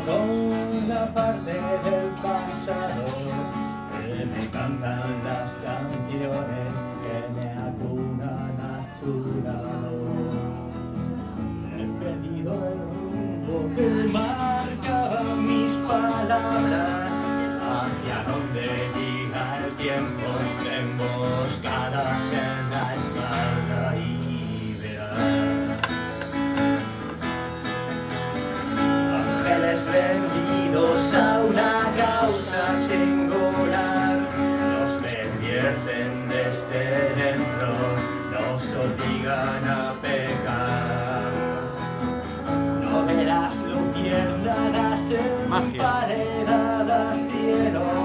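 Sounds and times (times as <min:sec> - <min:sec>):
acoustic guitar strumming: 0:00.0 - 0:48.0.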